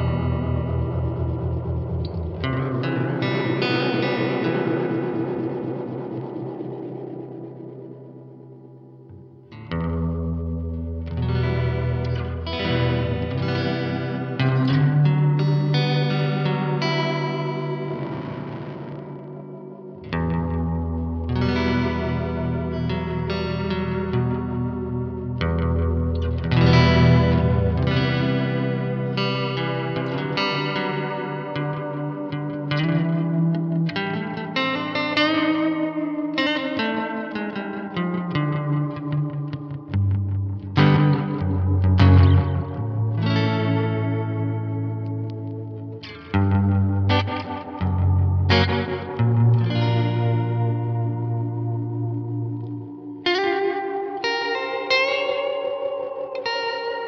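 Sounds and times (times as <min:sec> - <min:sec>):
electric guitar with delay: 0:00.0 - 0:57.0.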